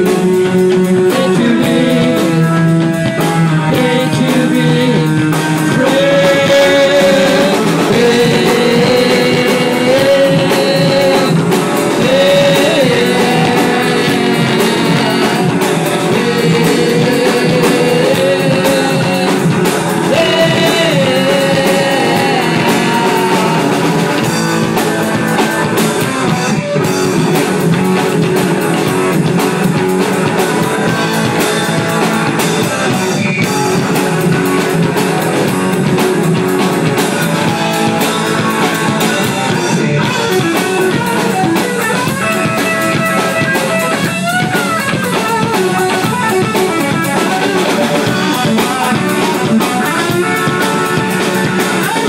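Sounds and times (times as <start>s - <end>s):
drum kit: 0.0s - 52.0s
electric guitars: 0.0s - 52.0s.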